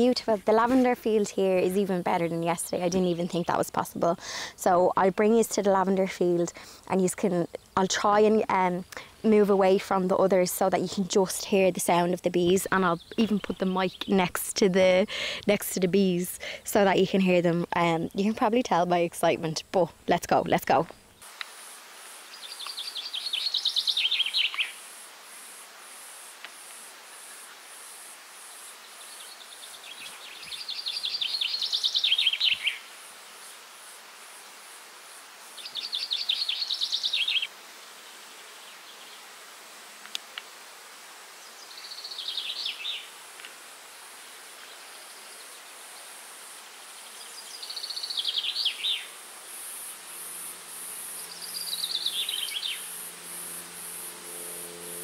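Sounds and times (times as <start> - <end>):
high fast-pulsing insect call: 21.2 - 39.4, 41.2 - 55.0
songbird trilling: 22.4 - 24.8, 29.1 - 32.8, 35.6 - 37.5, 47.4 - 49.1, 51.2 - 53.0
honeybees buzzing: 48.4 - 55.0.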